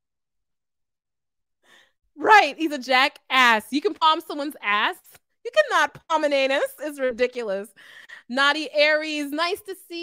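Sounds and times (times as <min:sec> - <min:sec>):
faint breath: 0:01.6 - 0:02.0, 0:07.8 - 0:08.3.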